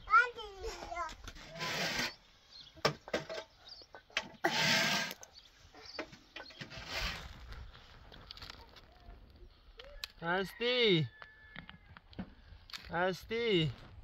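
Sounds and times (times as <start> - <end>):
sieve rasping bursts: 1.4 - 2.2, 4.4 - 5.3.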